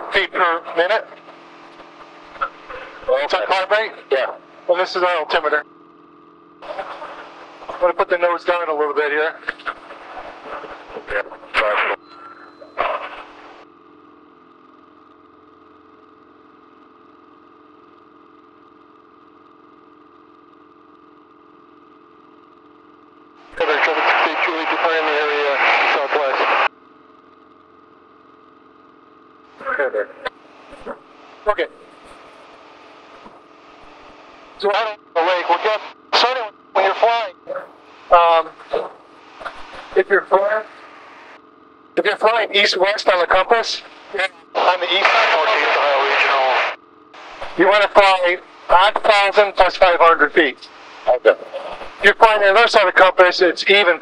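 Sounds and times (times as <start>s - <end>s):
radio transmission voice: 0.0s - 5.6s, 6.6s - 13.6s, 23.5s - 26.7s, 29.6s - 41.4s, 42.0s - 54.0s
propeller plane engine drone: 0.0s - 53.8s
bursts of speech: 23.6s - 26.7s, 34.6s - 39.0s, 42.0s - 46.8s, 47.5s - 54.0s.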